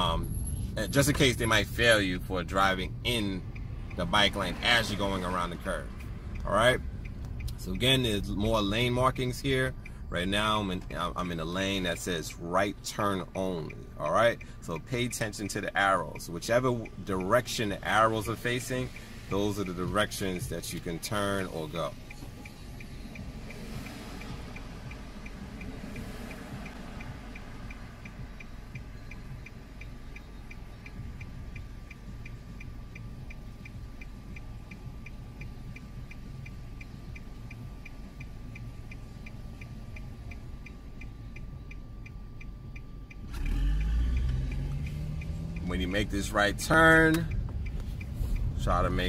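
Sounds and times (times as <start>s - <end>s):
car engine idling and revving: 0.0s - 49.0s
turn signal ticking: 0.0s - 49.0s.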